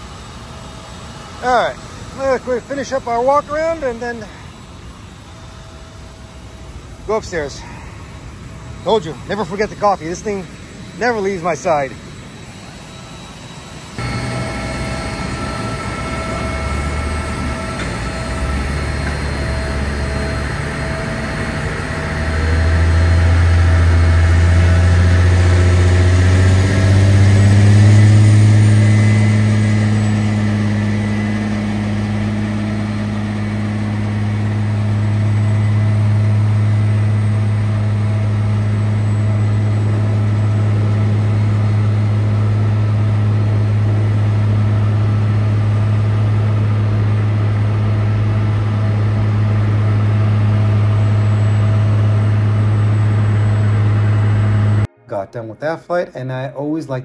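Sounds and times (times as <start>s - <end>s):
diesel engine revving: 14.0s - 54.9s.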